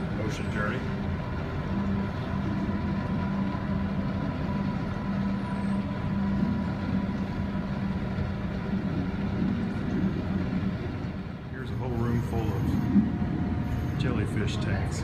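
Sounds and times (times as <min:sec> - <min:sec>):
low mechanical hum and rumble: 0:00.0 - 0:15.0.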